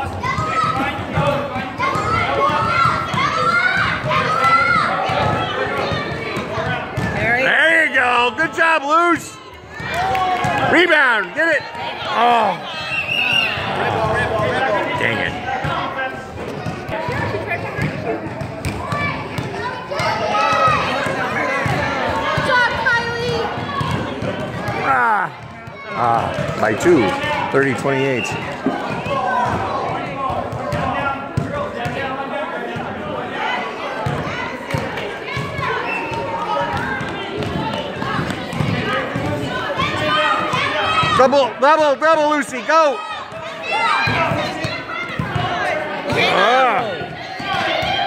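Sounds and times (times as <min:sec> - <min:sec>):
basketball bouncing: 0:00.0 - 0:07.2, 0:16.6 - 0:27.4, 0:28.3 - 0:32.0, 0:36.6 - 0:41.1, 0:43.3 - 0:46.3
voices of spectators and players: 0:00.0 - 0:48.0.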